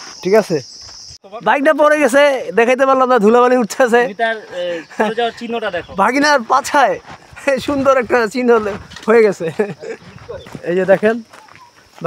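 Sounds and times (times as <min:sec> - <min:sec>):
outdoor background noise: 0:00.0 - 0:12.0
man speaking: 0:00.2 - 0:00.6, 0:01.2 - 0:11.3.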